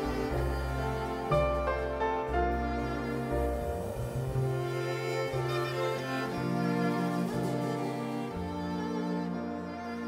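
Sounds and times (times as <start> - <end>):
string quartet bowed chords: 0.0 - 10.0.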